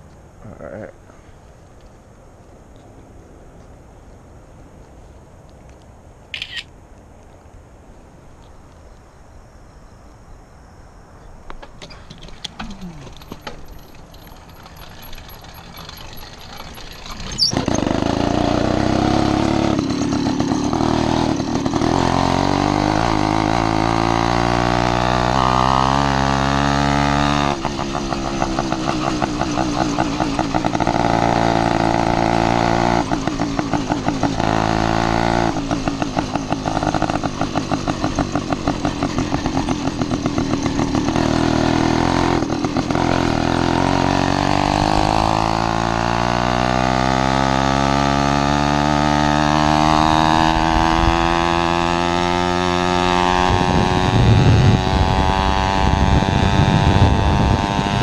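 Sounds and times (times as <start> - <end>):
two-stroke engine accelerating: 11.8 - 58.0.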